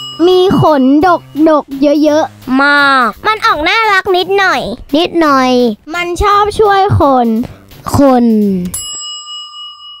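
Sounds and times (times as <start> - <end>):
bell ding: 0.0 - 1.6, 8.7 - 10.0
child speaking: 0.2 - 8.8.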